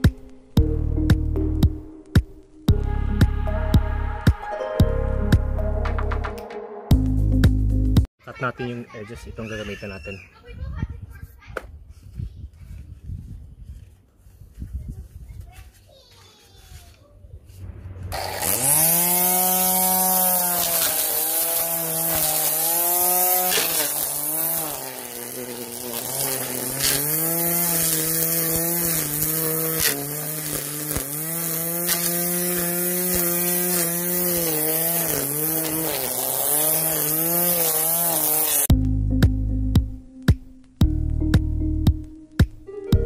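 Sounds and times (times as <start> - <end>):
electric string trimmer cutting grass: 18.1 - 38.7.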